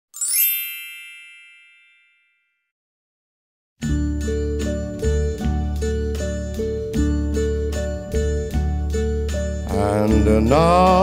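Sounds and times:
sparkle chime: 0.1s - 2.6s.

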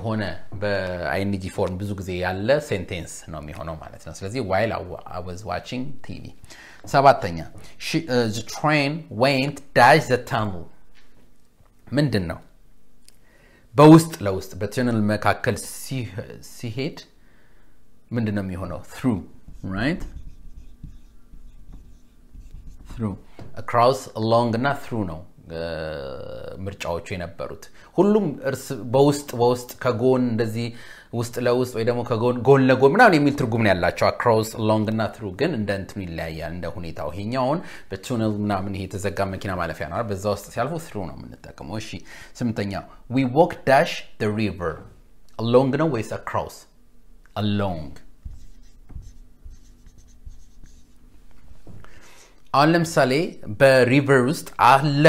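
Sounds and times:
marker writing on whiteboard: 19.2s - 23.6s, 48.2s - 51.0s.

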